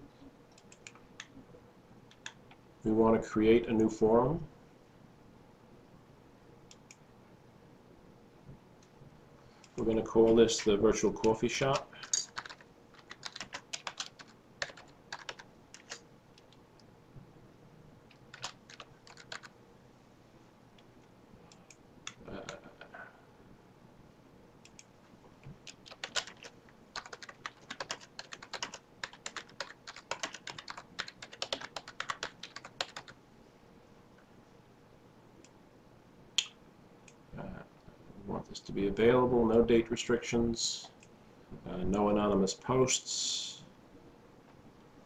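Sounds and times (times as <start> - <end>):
typing on computer keyboard: 0.5 - 1.0, 11.2 - 16.6, 18.1 - 19.5, 25.6 - 33.2.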